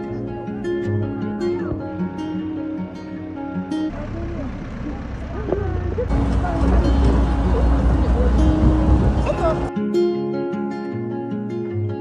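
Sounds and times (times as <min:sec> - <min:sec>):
low rumble of moving vehicle: 0:03.7 - 0:09.7
voices chattering and calling: 0:03.9 - 0:09.7.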